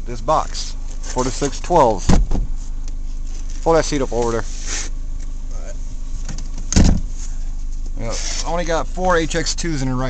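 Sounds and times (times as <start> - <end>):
low hum inside a car: 0.0 - 10.0
loud clunk: 6.3 - 7.2.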